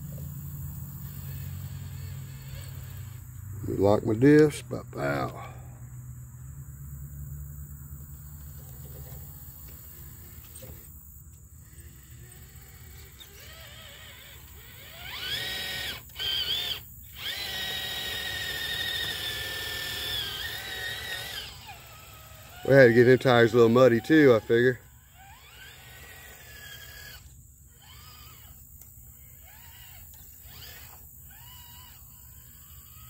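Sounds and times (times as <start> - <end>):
electric motor whine: 0.0 - 5.6, 7.3 - 33.0.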